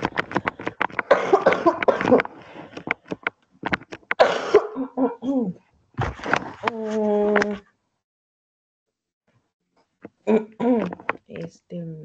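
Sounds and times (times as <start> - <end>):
person coughing: 1.0 - 2.3, 4.2 - 5.6.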